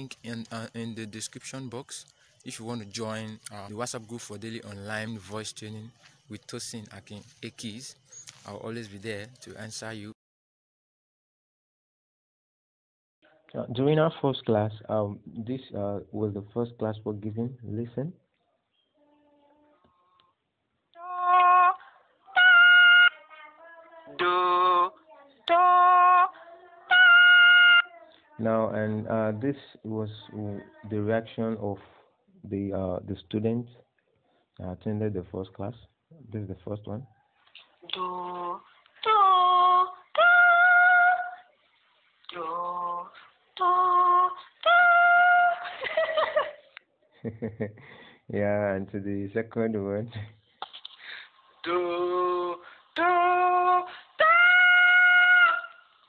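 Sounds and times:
woman singing through phone: 22.5 - 28.0.

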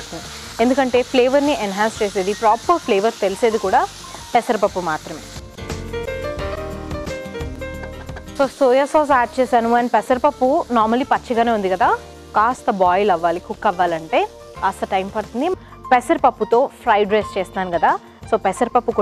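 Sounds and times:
vegetables sizzling in a pan: 0.0 - 5.9, 7.4 - 16.4.

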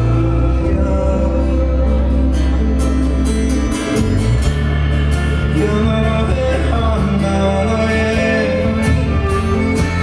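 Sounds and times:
acoustic guitar: 0.0 - 10.0
electric guitar: 0.0 - 10.0.

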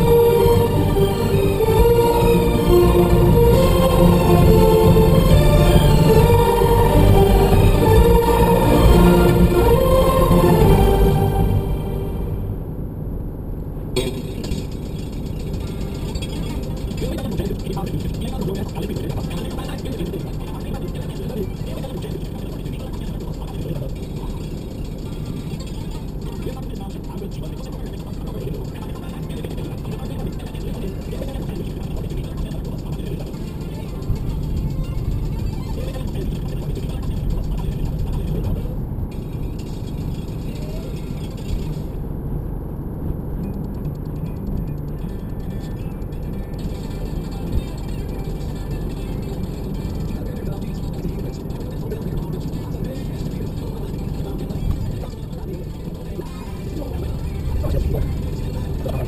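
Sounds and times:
car cabin road and engine noise: 0.0 - 59.0.

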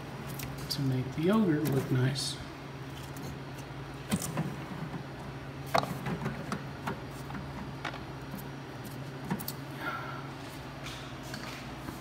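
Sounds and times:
refrigerator humming: 0.0 - 12.0.

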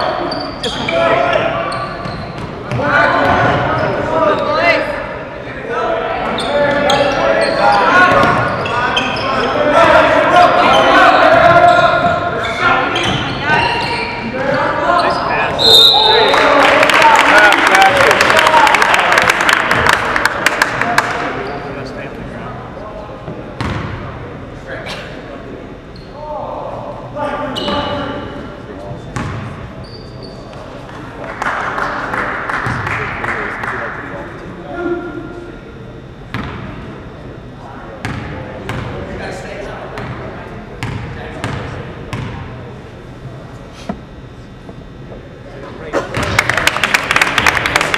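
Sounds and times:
voices: 0.0 - 47.9.

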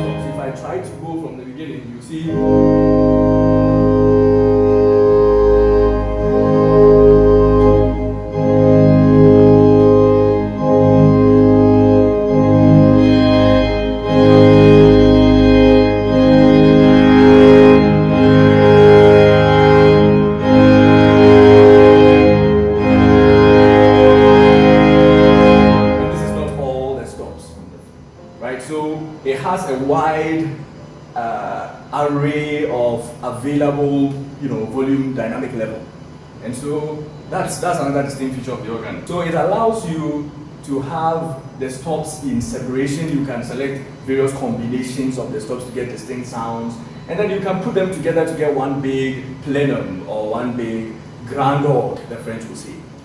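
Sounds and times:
organ playing sustained chords: 0.0 - 53.0.

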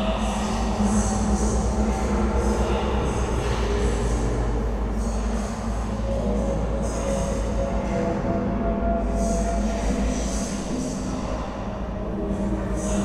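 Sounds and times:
low drone and rumble: 0.0 - 13.0.

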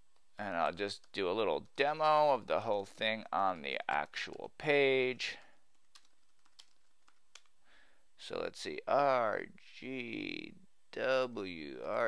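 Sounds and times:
low hiss: 6.9 - 12.0.

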